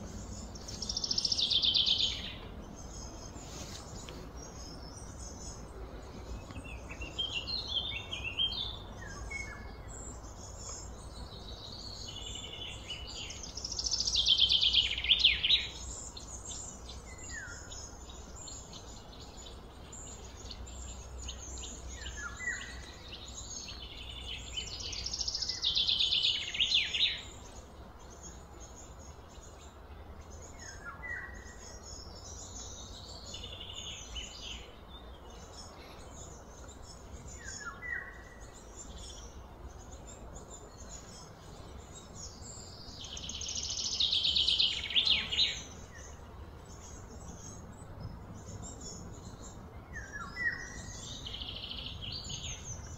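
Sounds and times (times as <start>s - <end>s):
birds chirping and singing: 0.0s - 52.9s.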